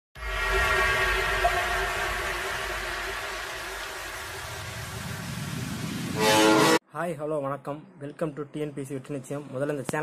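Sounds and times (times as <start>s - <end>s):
faint sustained tones: 0.2s - 5.1s
low rumble: 0.2s - 6.2s
noisy whoosh: 0.2s - 6.8s.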